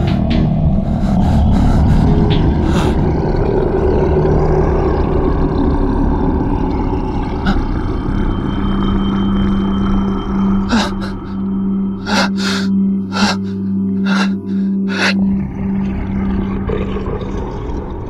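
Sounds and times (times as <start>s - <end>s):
dark low drone score: 0.0s - 18.0s.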